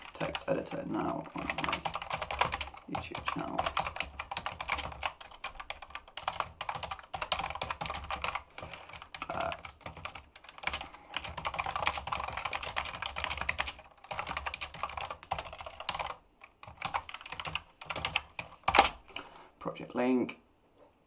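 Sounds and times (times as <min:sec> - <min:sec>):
typing on computer keyboard: 0:00.0 - 0:19.0.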